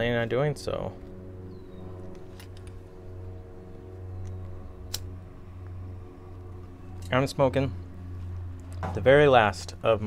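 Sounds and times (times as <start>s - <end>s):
low background hum: 0.0s - 10.0s
lighter click: 4.9s - 5.1s.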